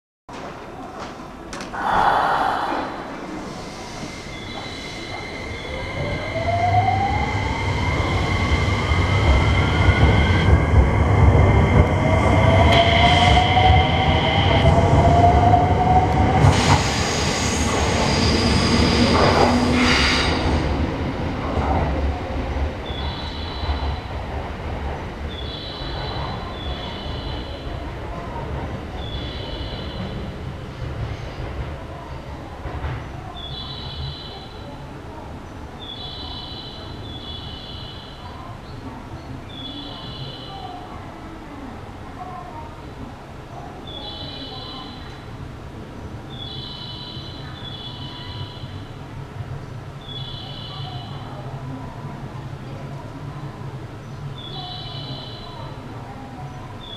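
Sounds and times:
train rolling rumble: 0:00.3 - 0:46.4.

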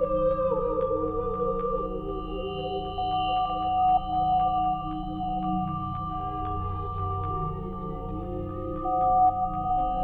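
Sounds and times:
faint ticks: 0:04.2 - 0:10.0.

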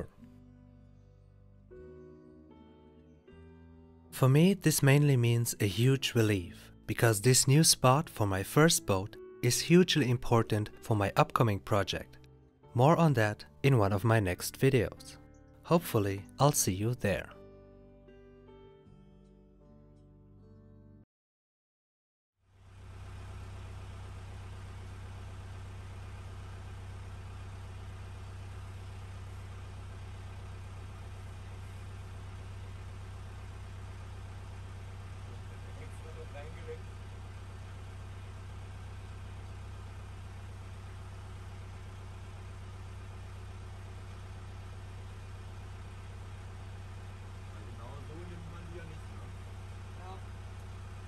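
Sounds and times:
boat engine humming: 0:00.0 - 0:00.2, 0:22.6 - 0:51.0.

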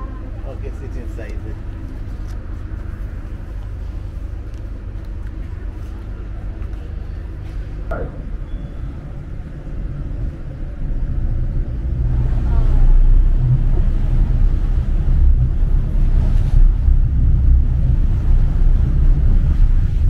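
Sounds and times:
boat engine rumbling: 0:00.0 - 0:20.0.

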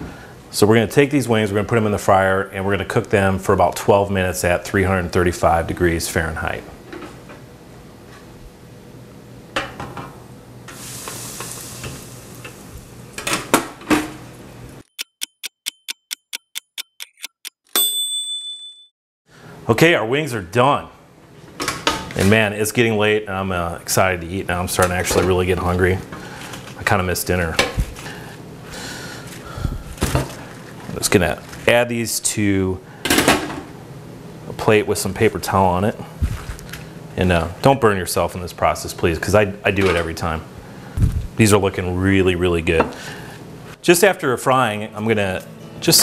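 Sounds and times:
hiss of deep frying in oil: 0:10.6 - 0:13.3
kitchen timer ticking: 0:14.8 - 0:18.0
timer bell ding: 0:15.0 - 0:18.9.

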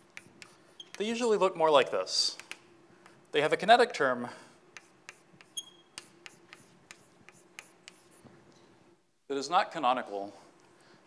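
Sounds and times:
chalk squeak: 0:00.0 - 0:01.0, 0:04.8 - 0:08.2
chalk tapping and scraping: 0:00.0 - 0:01.2, 0:04.7 - 0:08.4.

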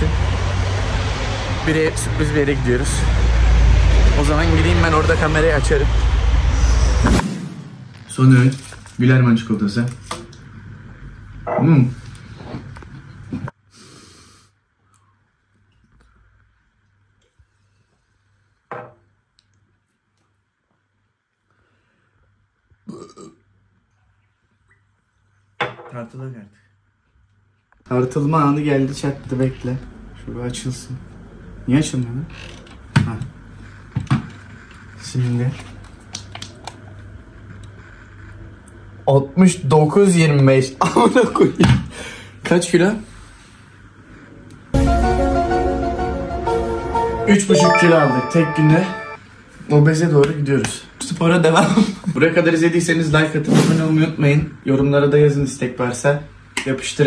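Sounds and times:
man burping: 0:22.9 - 0:23.5.

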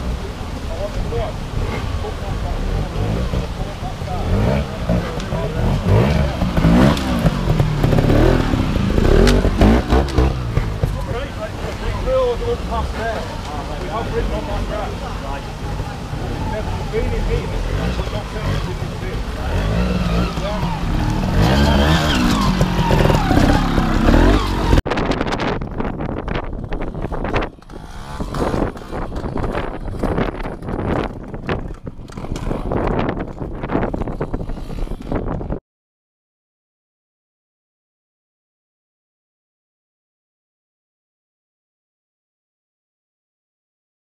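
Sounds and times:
motorcycle engines revving: 0:00.0 - 0:35.6
wind buffeting microphone: 0:19.7 - 0:35.6.

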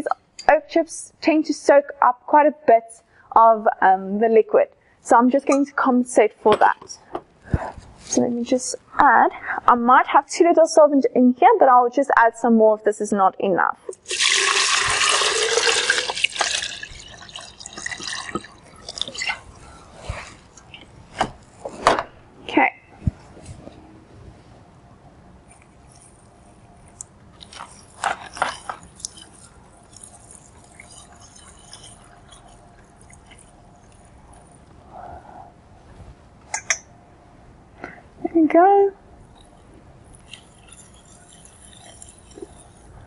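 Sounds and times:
liquid pouring into glassware: 0:13.9 - 0:19.4.

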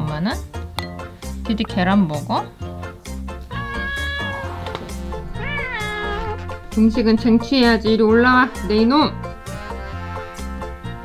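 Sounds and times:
background music with beat: 0:00.0 - 0:11.0
cat meowing: 0:03.5 - 0:06.8.

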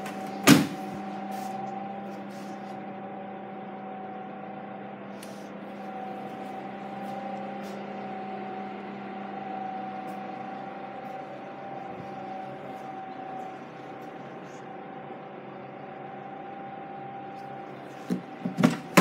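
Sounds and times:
low and high hum tones: 0:00.0 - 0:19.0.

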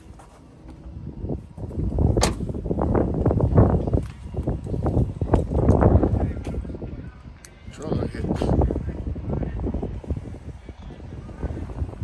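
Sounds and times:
handling rumble: 0:00.0 - 0:12.0
wind buffeting microphone: 0:00.0 - 0:12.0.

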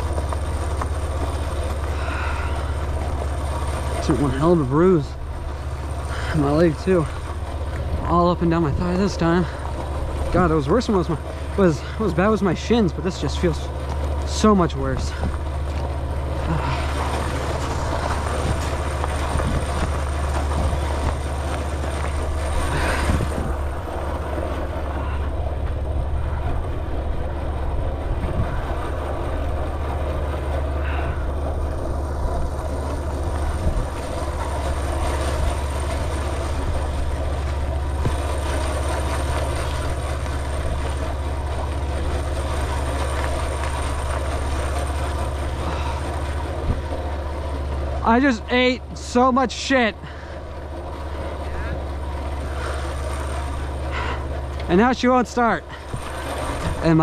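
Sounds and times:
motorbike engine droning: 0:00.0 - 0:57.0
road and wind noise: 0:00.0 - 0:57.0.

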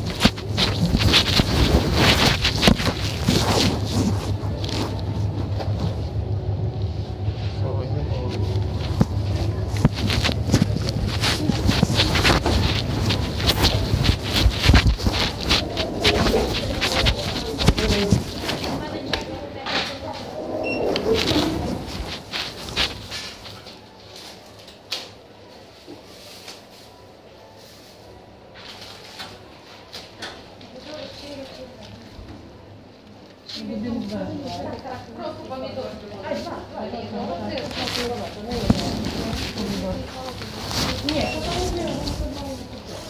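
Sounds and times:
low steady hum: 0:00.0 - 0:23.6
muffled voices: 0:00.0 - 0:43.0.

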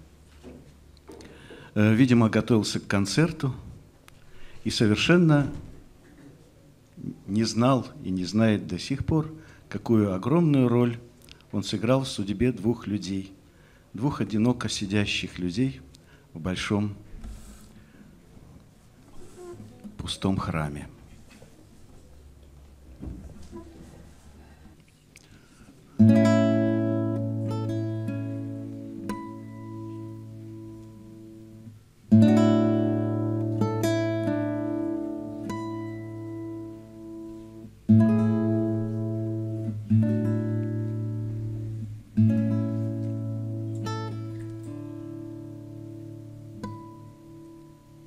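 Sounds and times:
fingerpicked acoustic guitar: 0:19.1 - 0:20.1, 0:25.4 - 0:48.0.

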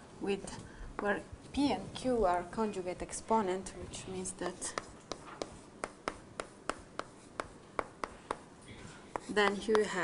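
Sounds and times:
chalk tapping on blackboard: 0:04.4 - 0:08.5, 0:09.1 - 0:10.0
chalk scratching: 0:04.4 - 0:10.0.

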